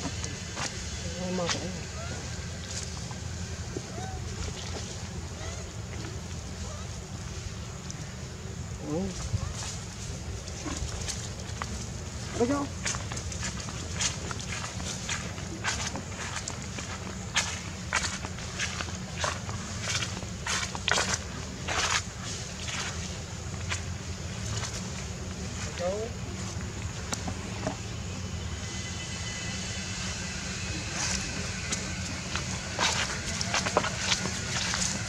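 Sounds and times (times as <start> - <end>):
footsteps crunching on dry leaves: 8.8 - 35.0.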